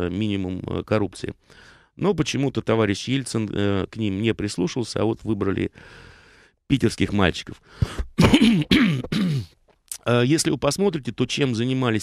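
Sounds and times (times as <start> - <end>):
man clearing throat: 7.8 - 9.6.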